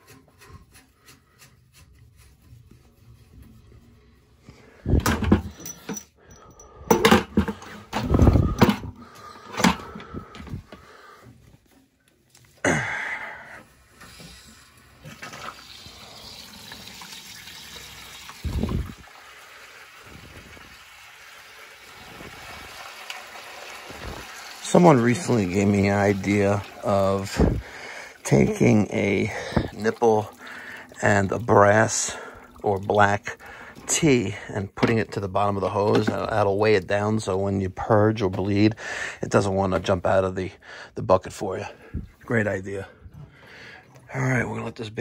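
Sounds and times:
water rushing through hose: 0:13.9 - 0:34.3.

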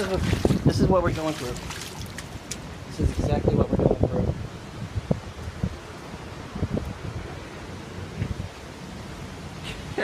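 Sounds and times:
wind buffeting microphone: 0:00.0 - 0:08.8
wind rustling leaves: 0:00.0 - 0:10.0.

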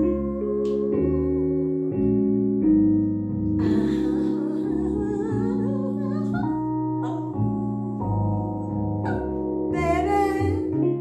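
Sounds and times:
woman singing with vibrato: 0:00.0 - 0:02.0, 0:03.6 - 0:10.8
keyboard chords: 0:00.0 - 0:11.0.

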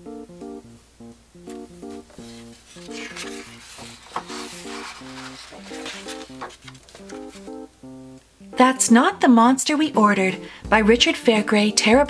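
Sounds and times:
book pages rustling: 0:01.5 - 0:07.7
paper flick: 0:02.7 - 0:07.5.

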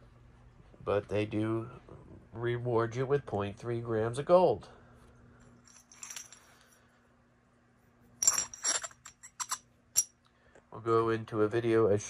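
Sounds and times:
ceramic chips clinking: 0:05.6 - 0:06.6, 0:08.2 - 0:10.2.

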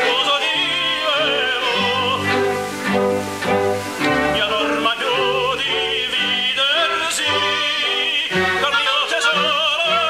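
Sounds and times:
operatic duet singing: 0:00.0 - 0:03.2, 0:04.0 - 0:10.0
instrumental accompaniment: 0:00.0 - 0:10.0.

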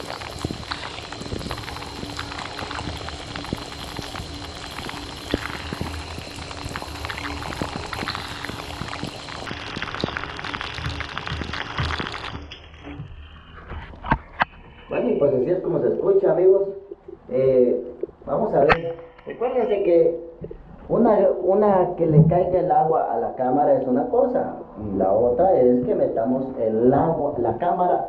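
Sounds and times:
shower spray on camera: 0:00.0 - 0:13.2.

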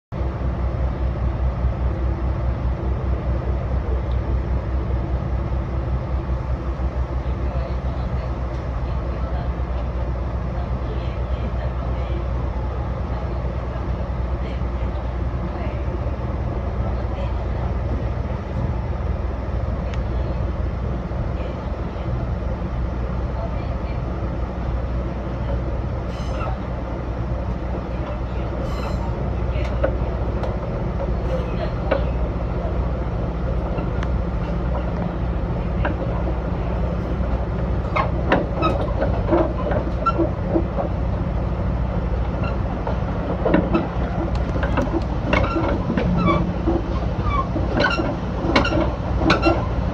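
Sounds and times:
diesel railcar engine drone: 0:00.1 - 0:49.9
train wheels rumbling on rails: 0:00.2 - 0:49.9
sharp clicks and knocks: 0:42.8 - 0:46.9.

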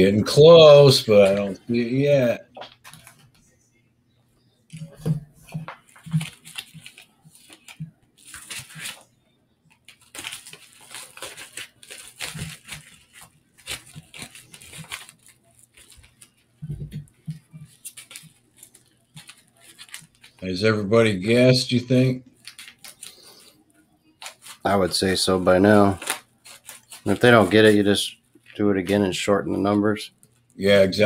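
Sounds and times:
rustling and crinkling handling noise: 0:00.0 - 0:03.7, 0:04.4 - 0:20.5, 0:22.3 - 0:31.0.

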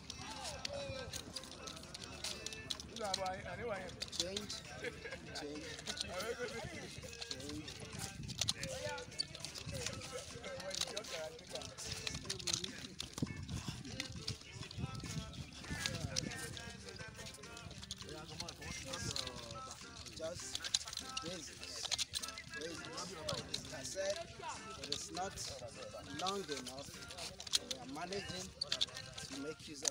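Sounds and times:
background voices: 0:00.0 - 0:29.9
nunchaku clicking and knocking: 0:00.0 - 0:29.9.

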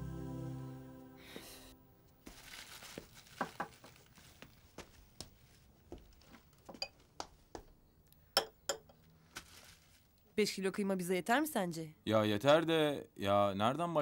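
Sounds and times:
plastic bags rustling: 0:02.1 - 0:06.7, 0:09.0 - 0:10.2
jars and dishes clinking: 0:08.4 - 0:09.0.

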